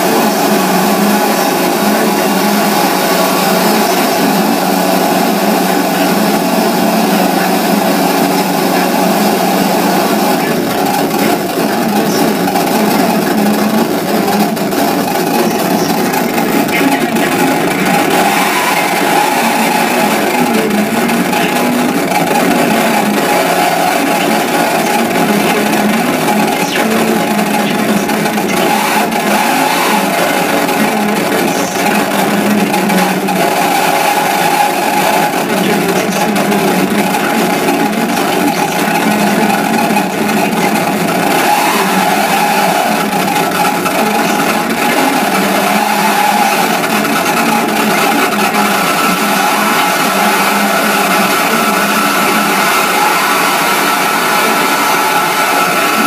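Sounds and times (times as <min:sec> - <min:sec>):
distorted noise music: 0:00.0 - 0:56.0.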